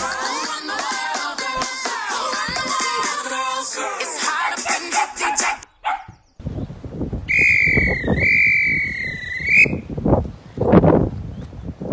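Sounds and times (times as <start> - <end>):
wind noise on microphone: 2.4 - 3.0, 5.8 - 11.9
long whistle blast: 7.3 - 9.8.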